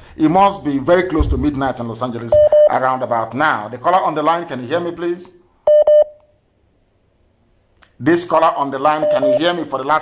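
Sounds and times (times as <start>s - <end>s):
phone line beep: 2.3s - 2.7s, 5.7s - 6.2s, 9.0s - 9.5s.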